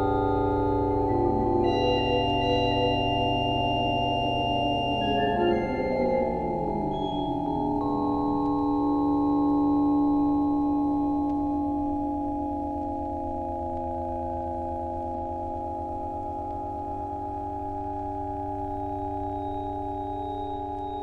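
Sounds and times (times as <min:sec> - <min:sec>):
steady sine-like tones: 0:00.0 - 0:21.0.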